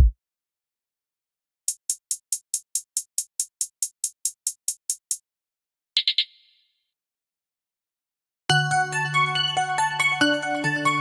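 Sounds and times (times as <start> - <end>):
hi-hat ticks: 1.7 - 5.2.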